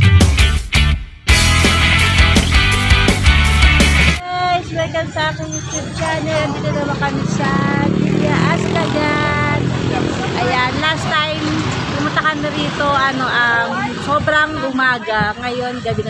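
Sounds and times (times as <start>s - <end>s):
vehicle engine rumbling: 2.2s - 16.0s
people talking: 4.2s - 16.0s.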